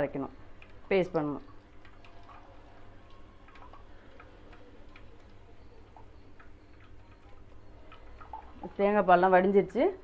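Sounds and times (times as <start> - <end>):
low steady hum: 0.0 - 10.0
liquid dripping into steel vessel: 0.4 - 9.0.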